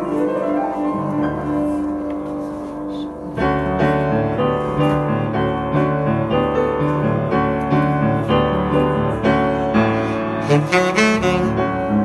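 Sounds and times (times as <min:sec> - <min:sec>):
piano playing jazz chords: 0:00.0 - 0:12.0.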